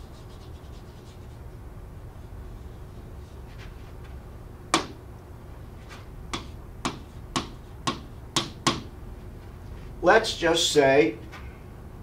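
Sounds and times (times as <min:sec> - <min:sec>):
stylus tapping on display board: 0:06.3 - 0:08.9.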